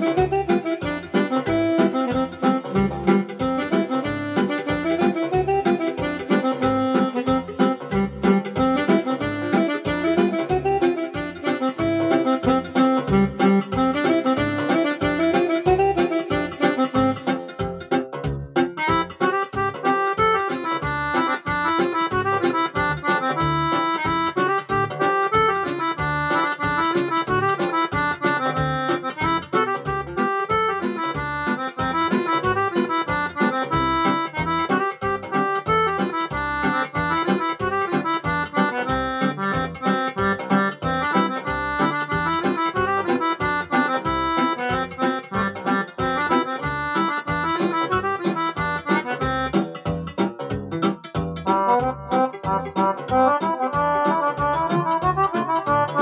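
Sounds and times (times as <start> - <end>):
accordion-like keyboard melody: 0.0 - 56.0
keyboard accompaniment with steady beat: 0.0 - 56.0.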